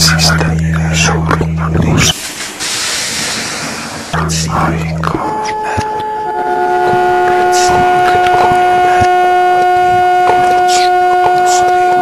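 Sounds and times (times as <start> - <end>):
low hum: 0.0 - 12.0
steady hiss: 1.9 - 5.4.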